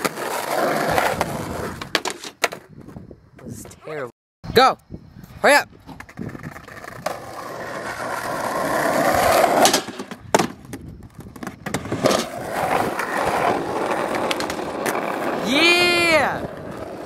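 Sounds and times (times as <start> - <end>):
skateboard wheels rolling on asphalt: 0.0 - 4.1, 5.5 - 17.0
skateboard clacks: 6.0 - 15.6.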